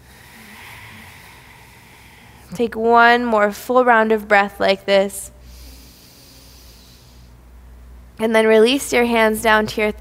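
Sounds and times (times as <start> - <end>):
slow breath through throat: 0.0 - 2.5, 5.4 - 7.4.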